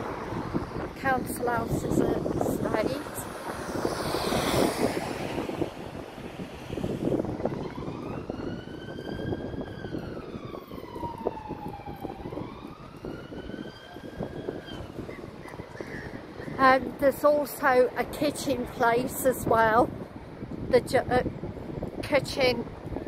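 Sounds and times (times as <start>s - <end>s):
distant emergency siren wailing: 0.0s - 16.5s
street traffic noise: 0.0s - 23.0s
van passing close by: 2.1s - 8.2s.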